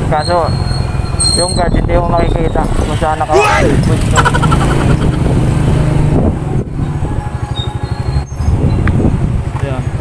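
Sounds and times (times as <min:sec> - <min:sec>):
motorcycle engine chugging: 0:00.0 - 0:06.6.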